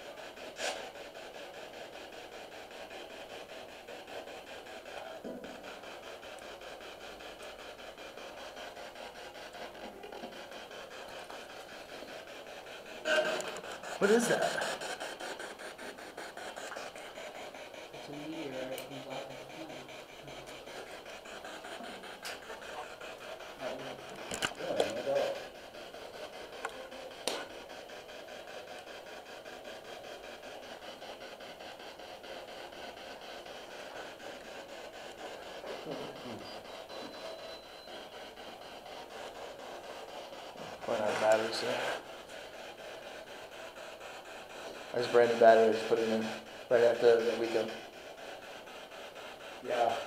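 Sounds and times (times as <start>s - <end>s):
steady hiss: 0.0s - 50.0s
sharp clicks: 26.6s - 27.5s.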